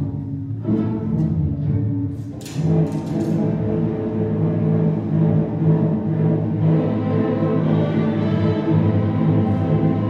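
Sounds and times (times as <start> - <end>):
low held cello and bass notes: 0.0 - 10.0
string orchestra playing: 0.0 - 10.0.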